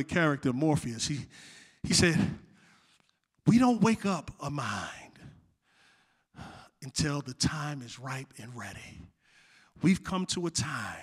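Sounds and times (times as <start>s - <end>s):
man speaking: 0.0s - 2.4s, 3.4s - 5.3s, 6.4s - 9.1s, 9.8s - 11.0s
man breathing in: 1.3s - 1.8s, 5.6s - 6.8s, 9.2s - 9.8s.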